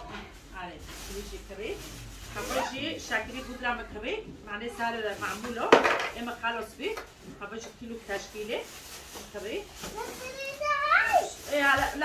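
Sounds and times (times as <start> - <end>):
child talking: 9.9 - 11.5
child calling out: 10.0 - 11.3.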